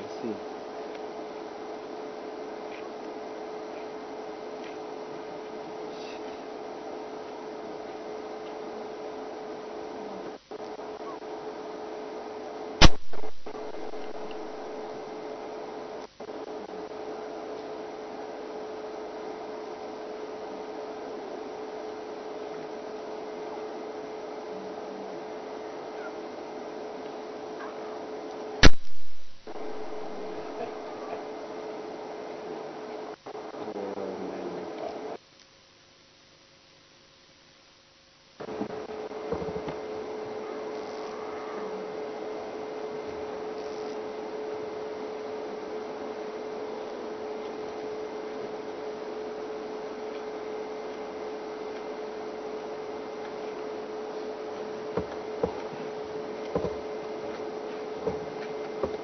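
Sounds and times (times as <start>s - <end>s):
steady hum: 0.0s - 28.0s, 28.6s - 35.2s
loud sharp clicks: 12.8s - 14.6s, 28.6s - 30.6s.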